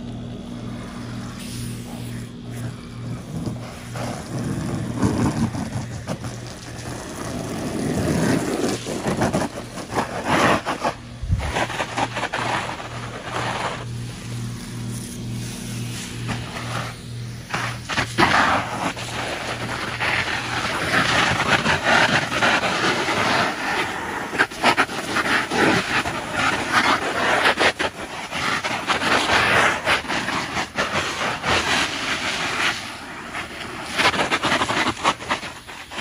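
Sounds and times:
low pulsing hum: 0.0 - 36.0
water spraying on plastic pool: 0.0 - 36.0.

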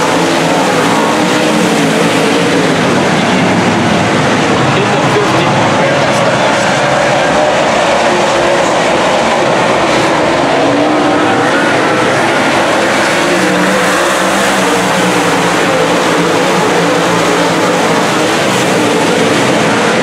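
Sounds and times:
race car engines roaring: 0.0 - 20.0.

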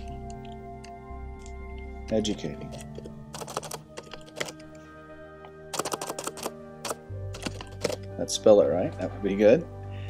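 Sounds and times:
background music: 0.0 - 10.0
keyboard typing: 2.1 - 4.7, 5.7 - 8.1.

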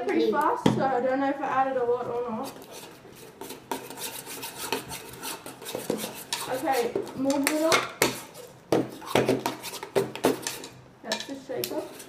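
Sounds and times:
metal spoon scraping ceramic bowl: 2.4 - 12.0.

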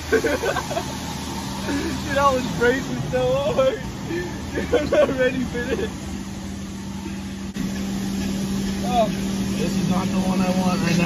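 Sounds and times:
car wash equipment humming: 0.0 - 11.0
spraying water hiss: 0.0 - 11.0.

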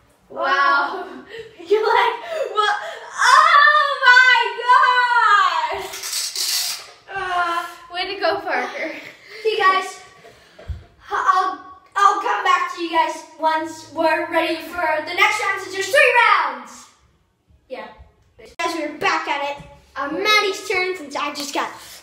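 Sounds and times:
children squealing and laughing: 0.5 - 7.9
short hiss: 5.8 - 7.1.

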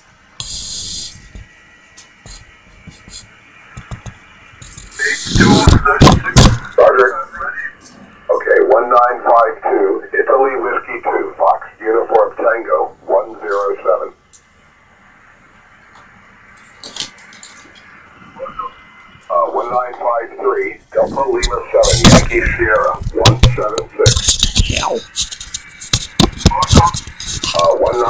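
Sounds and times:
faint static hiss: 0.0 - 28.0
person talking over radio: 5.0 - 14.2, 18.4 - 25.2, 26.2 - 28.0.

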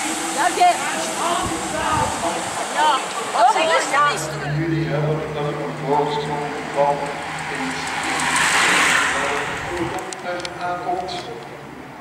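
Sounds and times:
voices talking: 0.0 - 11.7
racing bicycles passing: 0.0 - 12.0.

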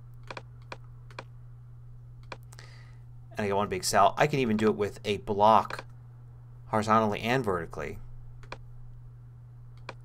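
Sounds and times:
low electrical hum: 0.0 - 10.0
computer mouse clicks: 0.2 - 1.3, 2.2 - 2.6, 8.4 - 8.7, 9.8 - 10.0.

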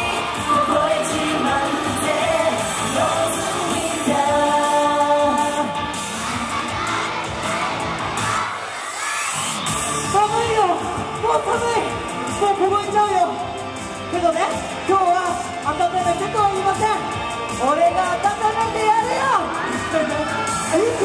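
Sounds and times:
men singing into microphones: 0.0 - 6.1
pop backing track: 0.0 - 8.5.

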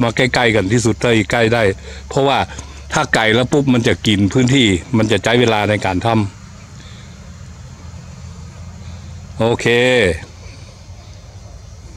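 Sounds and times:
faint hiss: 0.0 - 11.9.

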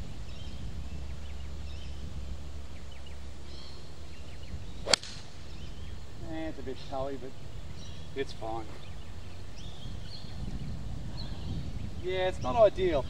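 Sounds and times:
golf club striking ball: 4.8 - 5.9.

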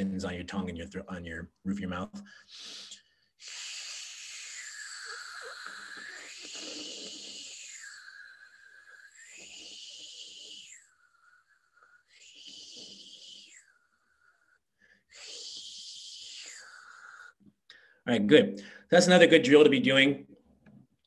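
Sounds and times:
man breathing: 2.1 - 15.6, 16.2 - 18.0, 18.6 - 18.9
man making fricative hiss: 2.3 - 17.4.

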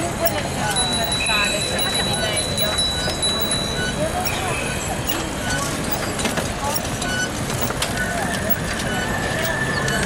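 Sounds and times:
bike chirps and ticks: 0.0 - 10.0
cyclists chattering and calling: 0.0 - 10.0.

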